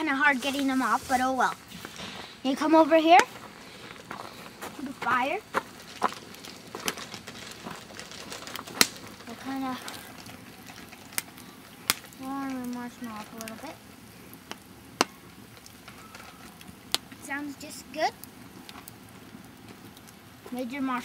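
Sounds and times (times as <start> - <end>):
campfire crackling: 0.0 - 21.0
sharp pops of fire: 0.0 - 21.0.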